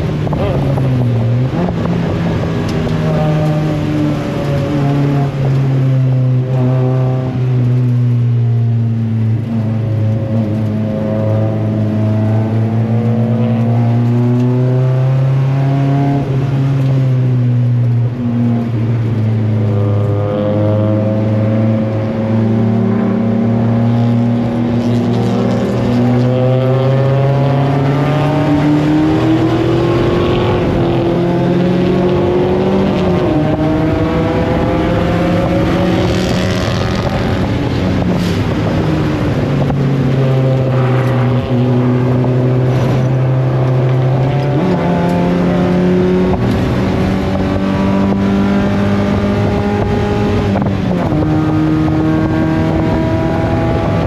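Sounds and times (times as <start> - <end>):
race car engine revving: 0.0 - 17.3, 18.0 - 54.0.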